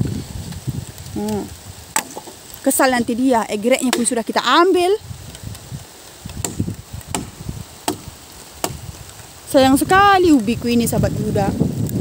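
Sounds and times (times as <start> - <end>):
sharp knocks: 6.4 - 8.8.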